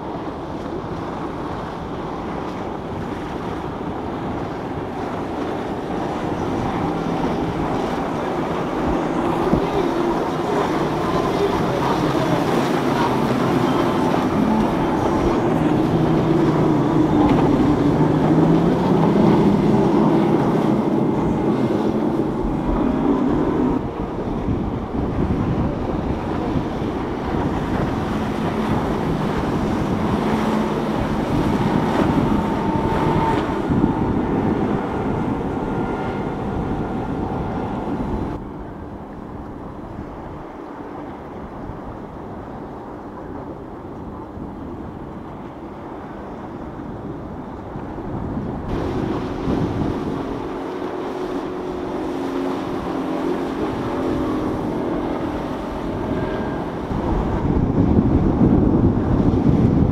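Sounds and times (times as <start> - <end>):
boat engine drone: 0.0 - 59.9
water rushing: 0.0 - 59.9
wind: 0.0 - 59.9.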